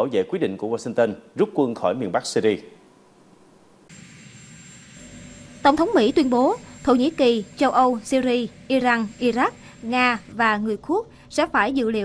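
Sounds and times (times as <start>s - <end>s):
helicopter turbine with high whine: 3.0s - 12.0s.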